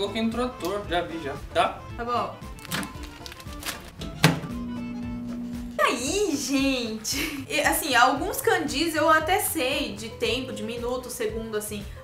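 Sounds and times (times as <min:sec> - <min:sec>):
food packet handling: 0:02.6 - 0:04.0
microwave door thunk: 0:04.0 - 0:04.8
microwave oven humming: 0:04.0 - 0:06.1.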